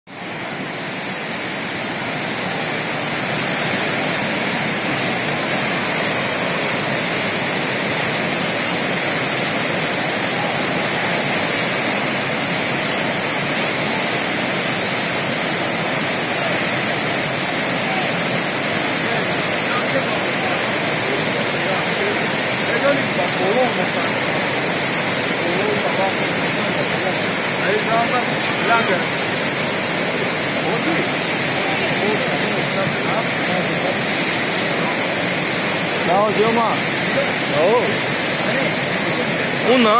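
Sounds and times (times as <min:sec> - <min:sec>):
floodwater rushing: 0:00.1 - 0:39.9.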